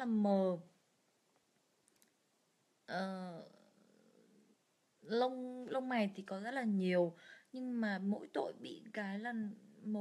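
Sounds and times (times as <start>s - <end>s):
woman's voice: 0.0s - 0.7s, 2.9s - 3.7s, 5.0s - 10.0s.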